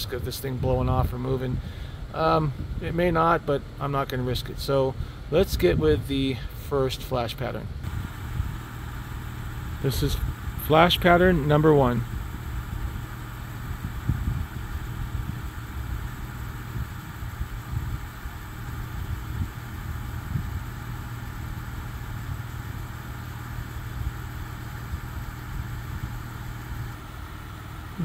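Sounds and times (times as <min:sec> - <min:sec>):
car engine idling: 0:07.7 - 0:28.0.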